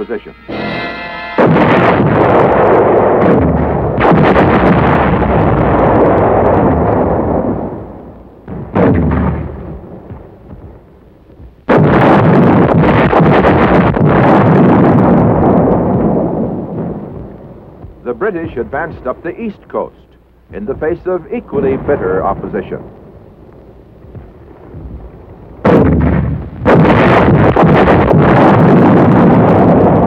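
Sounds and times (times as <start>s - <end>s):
artillery shells exploding: 0.0s - 30.0s.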